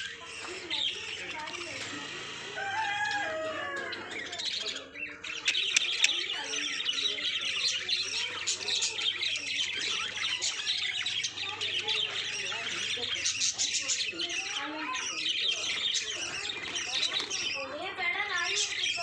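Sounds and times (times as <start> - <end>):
budgerigars chattering and chirping: 0.0 - 19.0.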